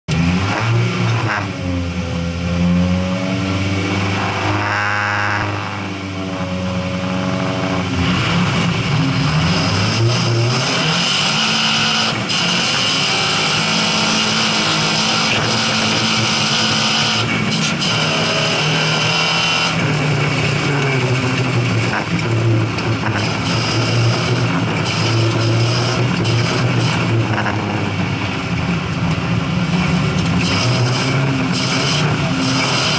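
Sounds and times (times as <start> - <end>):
race car engine revving: 0.0 - 32.9.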